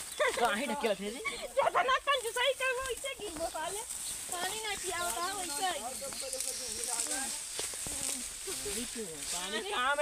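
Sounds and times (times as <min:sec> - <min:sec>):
steady high-pitched hiss: 0:00.0 - 0:10.0.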